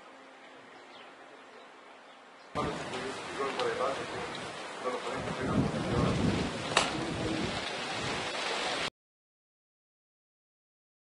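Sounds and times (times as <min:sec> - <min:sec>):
steady hiss: 0:00.0 - 0:08.9.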